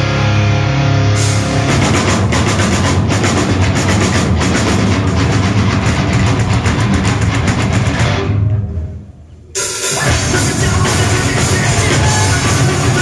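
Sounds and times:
heavy metal band playing: 0.0 - 13.0
fast drum hits: 1.7 - 8.2, 9.8 - 13.0.

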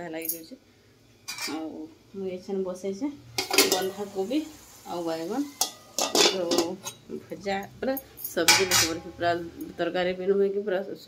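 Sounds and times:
woman talking: 0.0 - 0.6, 1.4 - 5.6, 6.2 - 11.0
pots and utensils clattering: 1.3 - 1.7, 3.4 - 4.1, 5.4 - 7.0, 8.3 - 9.2.

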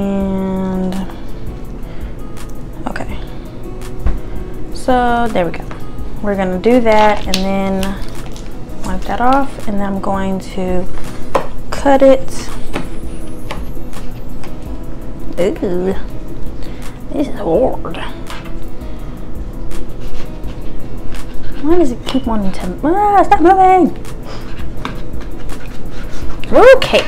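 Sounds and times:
knife sawing through sandwich: 20.0 - 21.5, 24.3 - 26.5.

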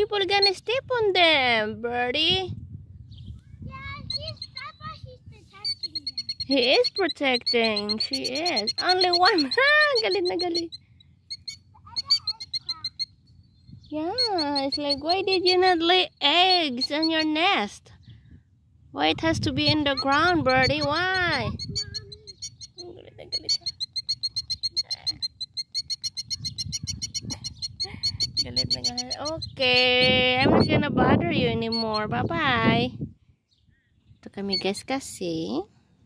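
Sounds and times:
bird alarm calls: 3.9 - 17.7, 19.3 - 32.7, 33.5 - 35.0.

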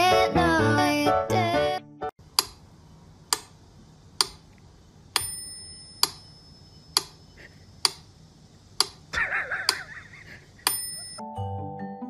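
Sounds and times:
metronome bell ring: 5.2 - 7.0, 10.7 - 11.6.

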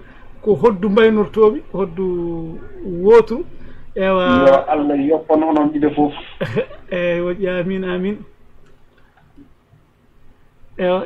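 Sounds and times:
man's voice holding a vowel: 4.0 - 6.2.

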